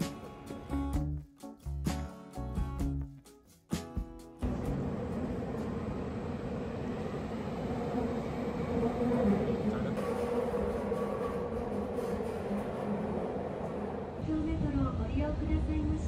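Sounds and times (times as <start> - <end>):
train running inside carriage: 4.4 - 16.0.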